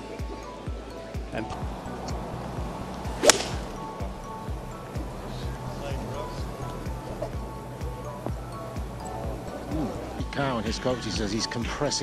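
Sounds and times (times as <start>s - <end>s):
background music with steady beat: 0.0s - 12.0s
golf club whooshing: 1.7s - 5.7s
golf club striking ball: 2.0s - 5.5s.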